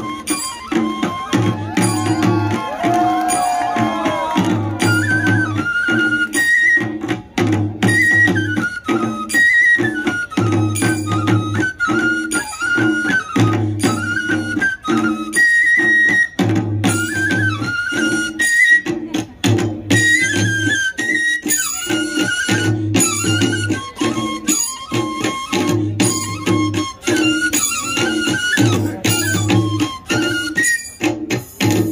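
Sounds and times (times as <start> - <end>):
bamboo flute melody: 0.0 - 31.9
steady drum beat: 0.6 - 5.6.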